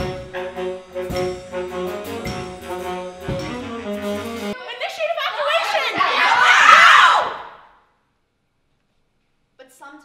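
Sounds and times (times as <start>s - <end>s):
instruments playing: 0.0s - 4.6s
people shouting: 5.0s - 7.7s.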